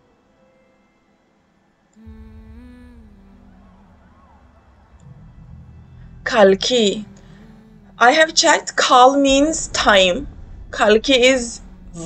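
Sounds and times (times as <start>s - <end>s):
deep rumble: 2.0s - 12.0s
low sustained droning tone: 2.0s - 12.0s.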